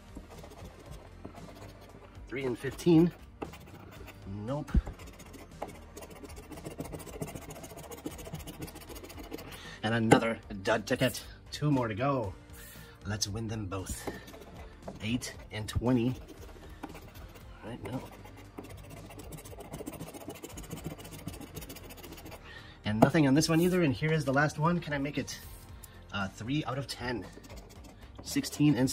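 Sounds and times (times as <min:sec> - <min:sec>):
coin scratching lottery ticket: 0:00.2 - 0:09.6, 0:14.0 - 0:22.4, 0:27.2 - 0:28.9.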